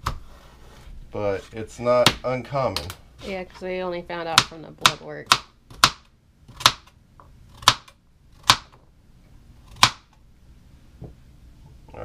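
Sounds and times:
knife chopping on plastic board: 0:02.0 - 0:02.2, 0:04.3 - 0:06.9, 0:07.6 - 0:08.8, 0:09.7 - 0:10.1.

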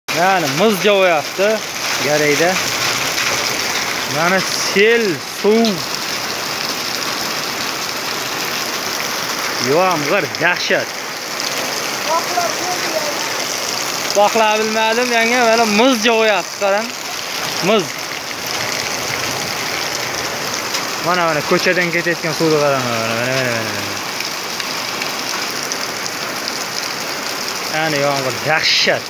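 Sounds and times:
heavy rain on puddled ground: 0:00.1 - 0:29.0.

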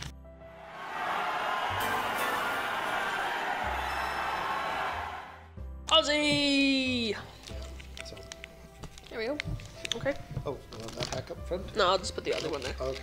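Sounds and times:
quiet background music: 0:00.0 - 0:13.0
crowd cheering: 0:00.5 - 0:05.6.

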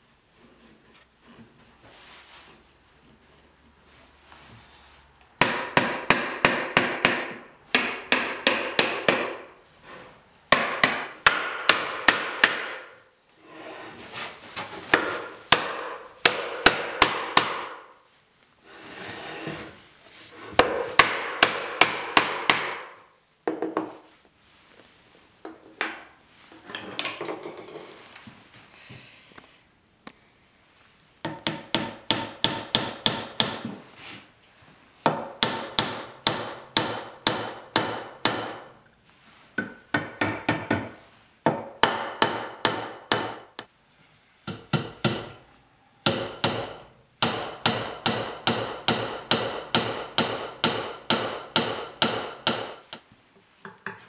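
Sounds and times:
soft noisy sound: 0:00.0 - 0:21.8, 0:22.4 - 0:54.0
hammer striking chisel: 0:05.4 - 0:09.5, 0:10.5 - 0:13.0, 0:15.0 - 0:17.9, 0:20.6 - 0:23.0, 0:31.2 - 0:33.8, 0:35.1 - 0:38.7, 0:39.6 - 0:43.7, 0:44.4 - 0:45.4, 0:46.0 - 0:52.9
hammer tapping wood: 0:31.2 - 0:33.8, 0:39.6 - 0:43.4, 0:46.0 - 0:52.8.

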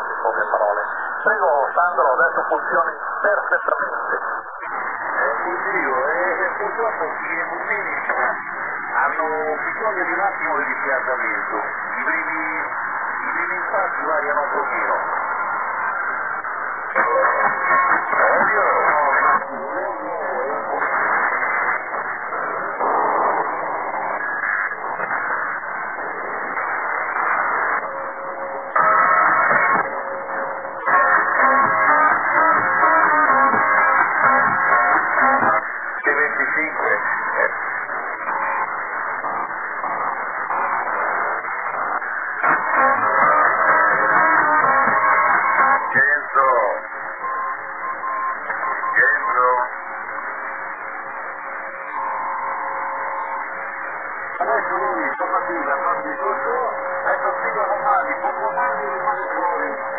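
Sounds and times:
guitar music over shortwave radio: 0:16.9 - 0:49.7.

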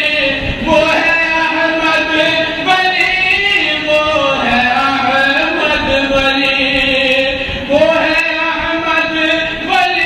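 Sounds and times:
man chanting unaccompanied: 0:00.0 - 0:10.0.

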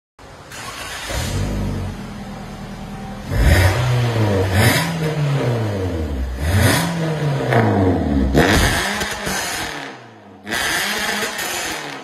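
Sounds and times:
car engine revving: 0:00.5 - 0:12.0.

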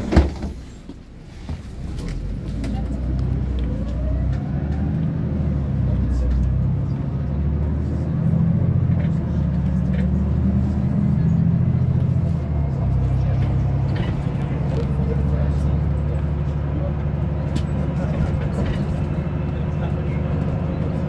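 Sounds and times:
bus engine rumbling: 0:00.0 - 0:21.0
road noise: 0:00.0 - 0:21.0.

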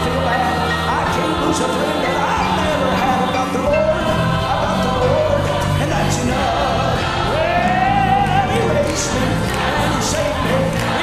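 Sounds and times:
backing voices singing: 0:00.0 - 0:11.0
band accompaniment with bass: 0:00.0 - 0:11.0
man singing gospel: 0:00.0 - 0:11.0.

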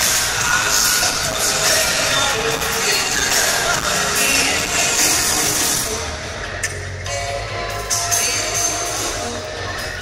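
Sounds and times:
distant live pop band music: 0:00.0 - 0:10.0.

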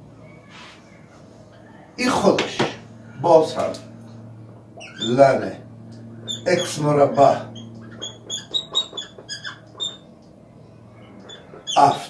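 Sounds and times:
marker squeaking on whiteboard: 0:07.6 - 0:10.1, 0:11.1 - 0:12.0.

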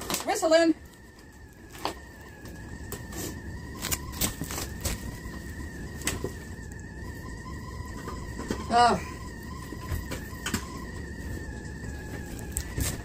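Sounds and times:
fire ticks and crackles: 0:00.0 - 0:13.0
wood stove fire whistling: 0:00.0 - 0:13.0.

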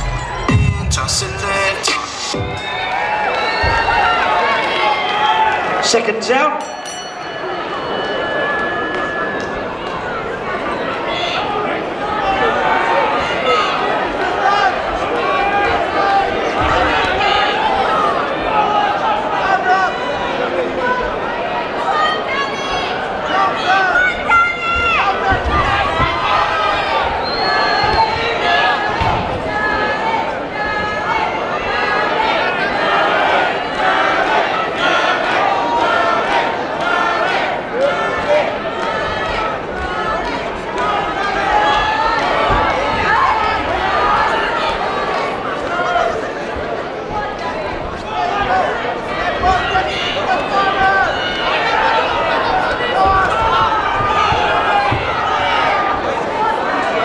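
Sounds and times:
crowd shouting and chattering: 0:00.0 - 0:57.0.

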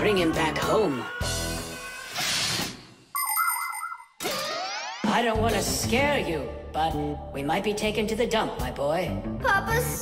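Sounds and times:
warbling electronic tone: 0:03.2 - 0:05.0.

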